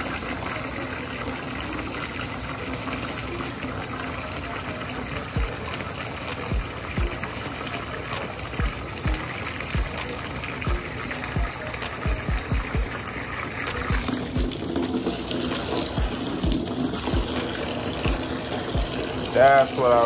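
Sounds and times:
hose spraying water into tub: 0:00.0 - 0:20.0.

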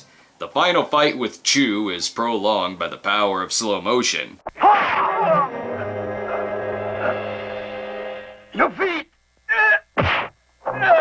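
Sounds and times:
falling vocal cry: 0:04.5 - 0:07.8, 0:10.7 - 0:11.0
held chord of music: 0:05.3 - 0:09.0.

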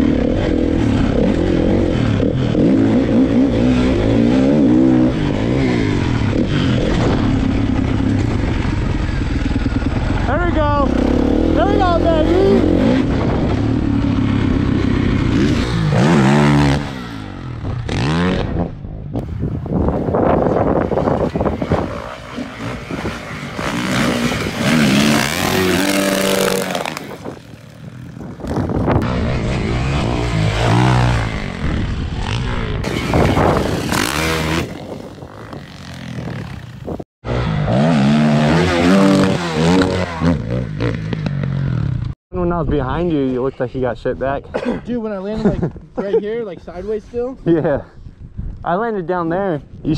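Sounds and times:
dirt bike engines revving: 0:00.0 - 0:42.2.

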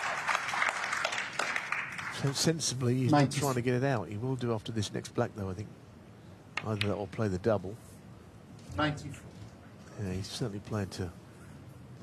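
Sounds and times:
audience applause: 0:00.0 - 0:02.5.

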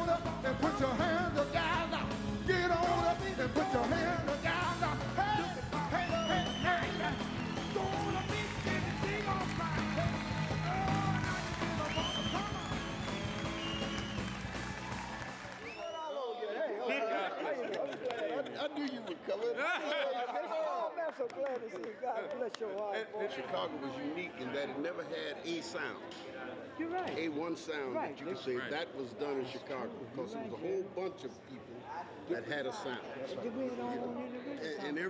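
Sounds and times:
men talking: 0:00.0 - 0:14.3, 0:15.8 - 0:35.0
live soul band: 0:00.0 - 0:15.6.

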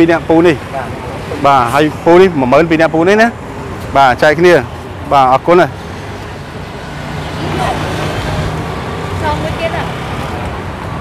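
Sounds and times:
passing vehicle engine hum: 0:00.0 - 0:11.0
road noise: 0:00.0 - 0:11.0.

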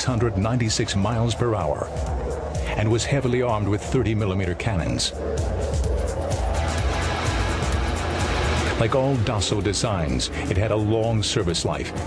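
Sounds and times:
background music: 0:00.0 - 0:12.0
jet flying overhead: 0:00.0 - 0:12.0.

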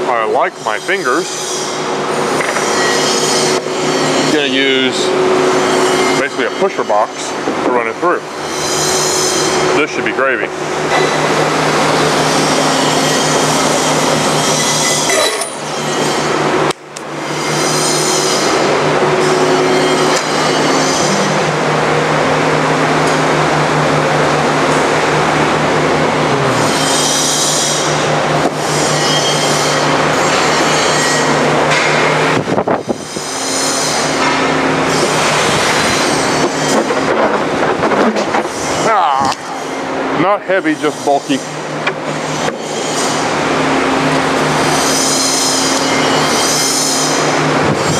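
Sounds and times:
band saw motor hum: 0:00.6 - 0:37.1, 0:39.4 - 0:47.9.

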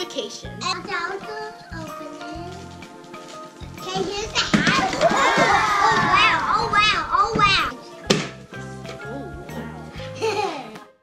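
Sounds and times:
children shouting and squealing: 0:03.9 - 0:07.7.

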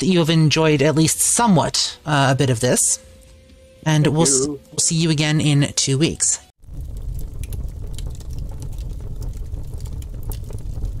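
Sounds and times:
liquid bubbling: 0:06.6 - 0:11.0
low rumble: 0:06.6 - 0:11.0
small crackles: 0:06.6 - 0:11.0.

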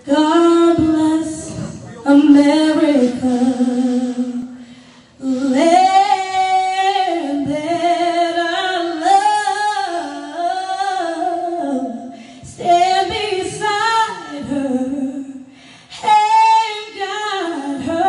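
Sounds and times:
woman singing unaccompanied: 0:00.0 - 0:04.6, 0:05.2 - 0:18.0.

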